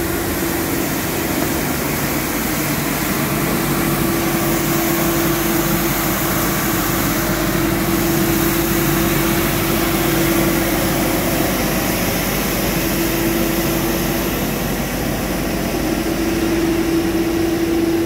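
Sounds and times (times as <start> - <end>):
street sweeper engine hum: 0.0 - 18.0.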